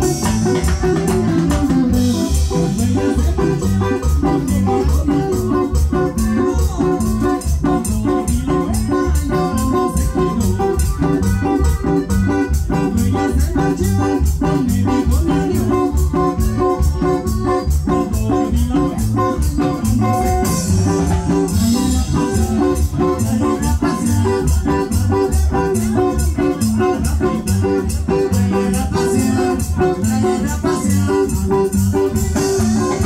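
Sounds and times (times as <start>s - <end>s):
keyboard with organ sound: 0.0s - 33.0s
percussion beat: 0.0s - 33.0s
pulsing bass: 0.0s - 33.0s.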